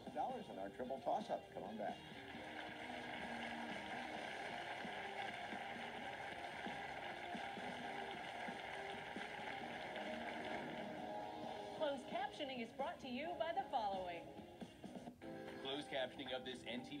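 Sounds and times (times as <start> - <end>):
studio audience applauding: 0.3 - 11.8.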